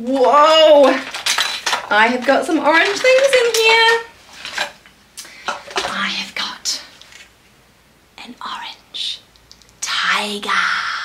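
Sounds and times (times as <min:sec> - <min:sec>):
wooden toys clacking together: 0:00.0 - 0:04.8.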